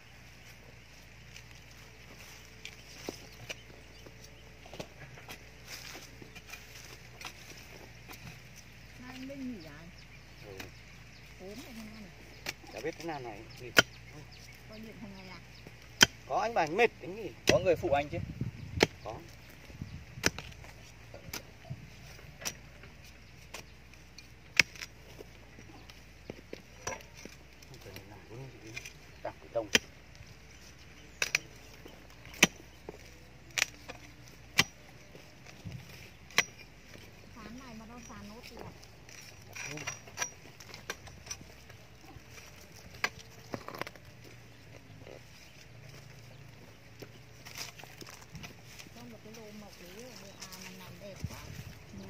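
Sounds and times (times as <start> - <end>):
spade striking stony soil: 10.6 - 14.6, 15.6 - 16.8, 17.4 - 18.0, 18.7 - 28.1, 28.7 - 37.2, 38.0 - 44.5.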